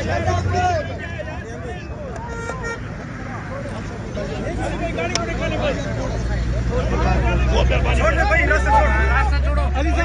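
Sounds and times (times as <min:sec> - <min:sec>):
crowd chatter: 0:00.0 - 0:10.0
vehicle horn toot: 0:02.2 - 0:02.9.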